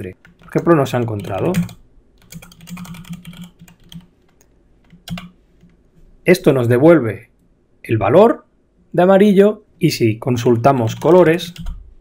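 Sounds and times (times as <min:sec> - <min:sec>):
computer keyboard typing: 0:00.2 - 0:05.8, 0:10.4 - 0:11.8.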